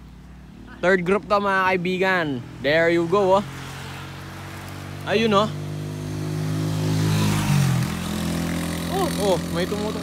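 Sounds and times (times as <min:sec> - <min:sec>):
small motorcycle engine running: 0:05.1 - 0:10.0.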